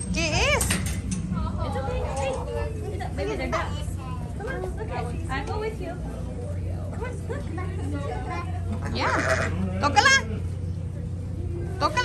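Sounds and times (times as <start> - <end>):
goats bleating: 8.8 - 10.5.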